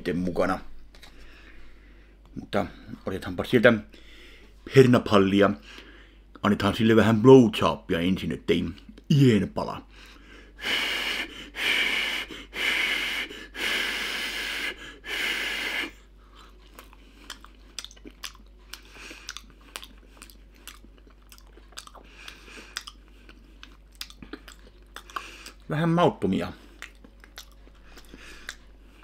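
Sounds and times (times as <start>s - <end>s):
man blowing puffs of breath: 10.0s - 16.1s
quiet wet chewing: 16.0s - 25.7s, 26.4s - 29.0s.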